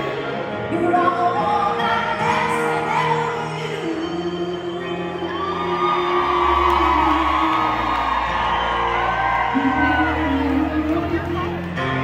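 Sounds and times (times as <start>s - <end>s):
woman singing: 0.0s - 8.2s, 9.4s - 11.7s
country band music: 0.0s - 12.0s
audience whooping: 5.2s - 11.4s.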